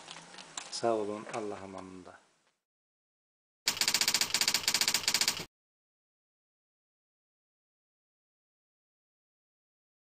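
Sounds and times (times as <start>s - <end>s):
typewriter key clatter: 3.7s - 5.5s.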